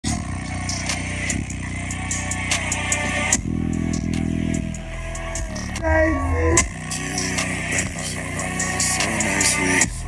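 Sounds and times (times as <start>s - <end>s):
deep sustained bass notes: 0.1s - 9.1s
ticking hi-hat beat: 0.1s - 10.0s.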